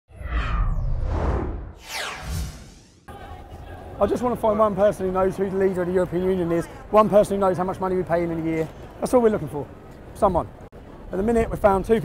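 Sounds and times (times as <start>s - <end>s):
deep rumble: 0.1s - 3.1s
whoosh: 0.1s - 3.1s
whoosh falling in pitch: 0.1s - 3.1s.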